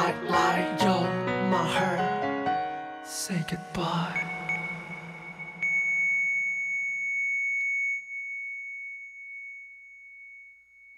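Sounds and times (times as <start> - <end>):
heart monitor flatline beep: 4.0 - 8.2.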